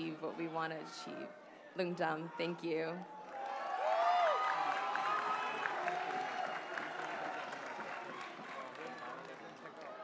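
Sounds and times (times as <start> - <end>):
audience applause: 3.2 - 10.0.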